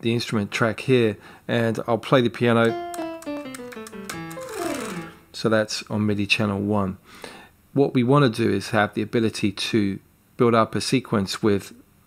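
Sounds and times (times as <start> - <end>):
piano descending notes: 2.6 - 5.4.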